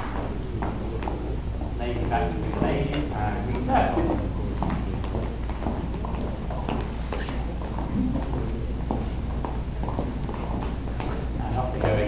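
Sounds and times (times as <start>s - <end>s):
shoes tapping on hard floor: 0.0s - 12.0s
steady low hum: 0.0s - 12.0s.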